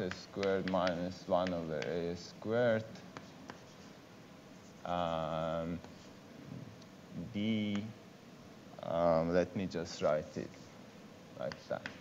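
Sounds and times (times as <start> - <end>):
chalk taps: 0.0 - 2.1, 2.9 - 4.0, 5.8 - 6.2, 11.4 - 12.0
chalk scratching on blackboard: 3.0 - 5.1, 5.8 - 6.2.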